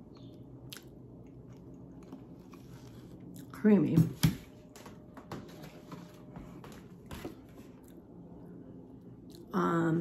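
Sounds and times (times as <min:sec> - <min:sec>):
person chewing food: 0:00.0 - 0:03.5, 0:07.2 - 0:08.2.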